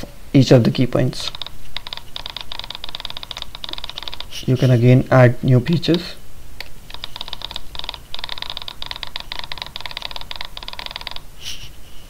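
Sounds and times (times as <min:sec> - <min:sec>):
fast computer keyboard typing: 0:01.2 - 0:04.7, 0:05.9 - 0:11.3.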